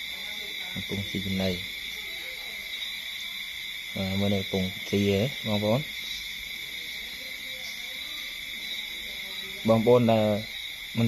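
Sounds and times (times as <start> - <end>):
night insects trilling: 0.0 - 11.0.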